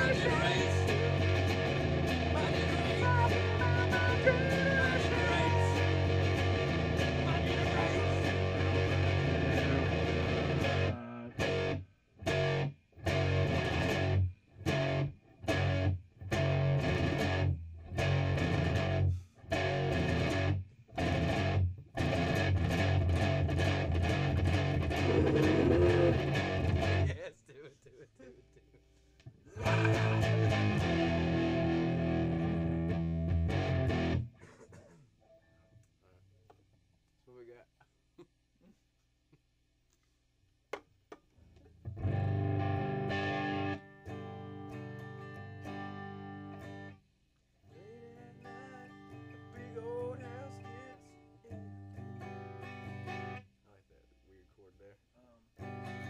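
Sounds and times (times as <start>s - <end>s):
bass: 0.0s - 27.2s, 28.1s - 34.4s, 41.3s - 47.1s, 47.7s - 56.0s
guitar: 0.0s - 36.6s, 41.4s - 54.0s, 54.8s - 56.0s.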